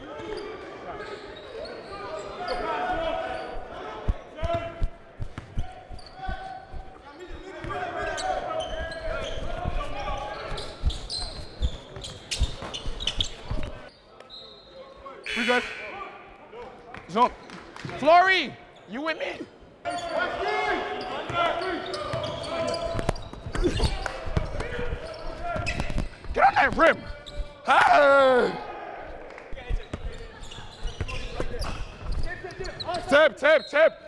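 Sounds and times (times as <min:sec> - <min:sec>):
voices echoing in gym: 0:00.0 - 0:34.0.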